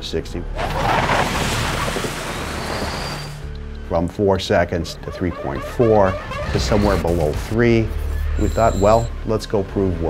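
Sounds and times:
electric car whooshing past: 0.6 - 3.5.

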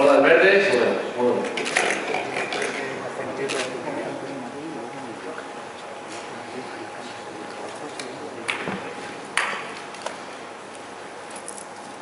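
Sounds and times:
murmur of voices: 0.0 - 9.4.

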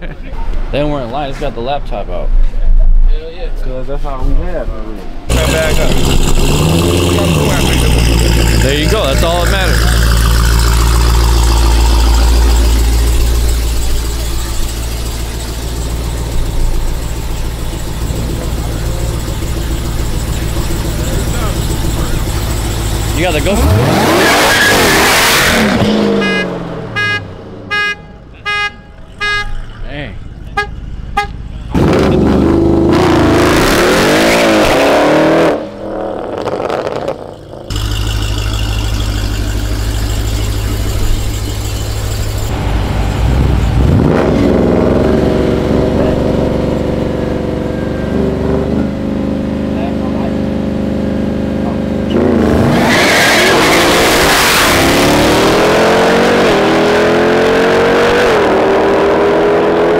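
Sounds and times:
car engines revving: 5.0 - 59.9
cars accelerating away: 5.3 - 27.0, 31.7 - 59.9
car horn toots: 25.8 - 29.8, 30.4 - 31.8.

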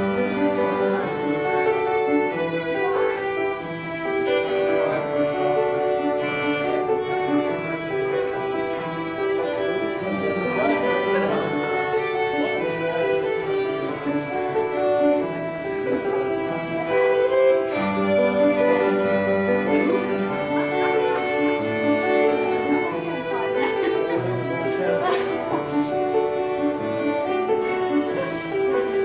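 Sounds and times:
band playing folk dance tune: 0.0 - 29.0
fiddle melody: 0.0 - 29.0.

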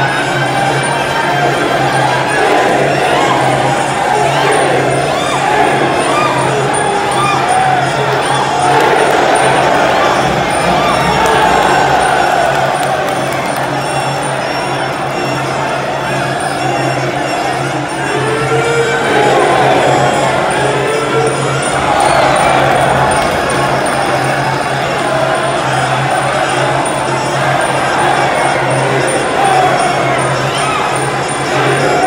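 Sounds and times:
crowd shouting: 0.0 - 32.0.

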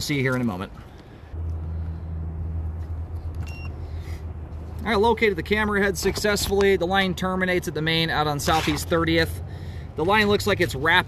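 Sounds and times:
low mechanical rumble: 0.8 - 11.0
short electronic beep: 3.4 - 3.8.

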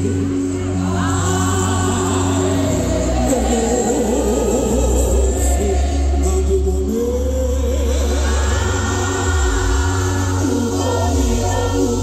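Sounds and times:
gospel band playing: 0.0 - 12.0
lead and backing vocals singing: 0.0 - 12.0
strong bass line: 0.0 - 12.0.

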